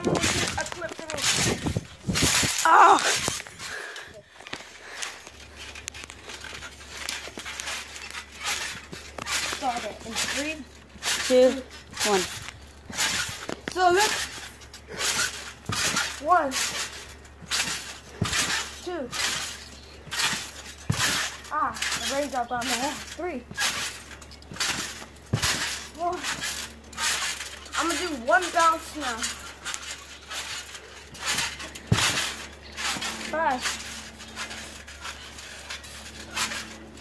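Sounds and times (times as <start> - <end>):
trampoline whooshing bounces: 0.0 - 37.0
dull low thump: 23.5 - 27.2, 30.4 - 33.8.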